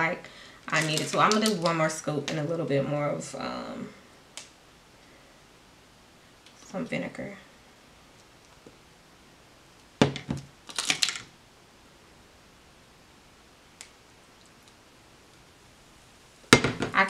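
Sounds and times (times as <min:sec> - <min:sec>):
sharp knock: 0:16.6 - 0:17.0.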